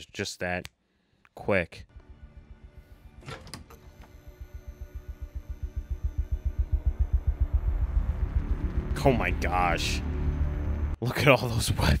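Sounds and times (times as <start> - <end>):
low pulsing tension music: 1.9 - 11.0.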